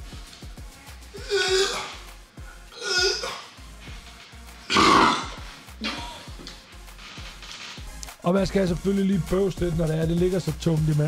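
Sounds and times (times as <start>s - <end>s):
background music with steady beat: 0.0s - 11.0s
man burping: 1.2s - 2.0s, 2.7s - 3.5s, 4.7s - 6.2s.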